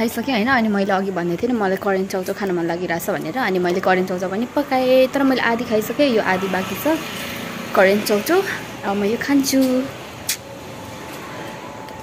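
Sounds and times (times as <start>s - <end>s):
outdoor town hum: 0.0s - 12.0s
sharp click: 9.6s - 10.5s.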